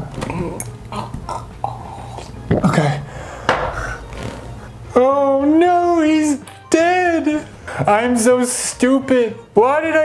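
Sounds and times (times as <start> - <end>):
single knock: 3.5 - 3.8.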